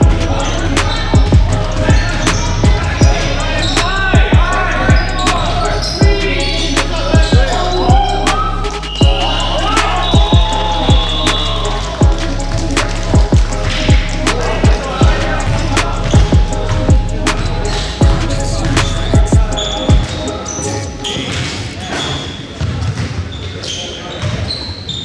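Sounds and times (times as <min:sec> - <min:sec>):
shoe squeaks: 0:00.4 - 0:04.1, 0:04.8 - 0:11.8, 0:18.6 - 0:25.0
basketball bouncing on gym floor: 0:22.6 - 0:23.3.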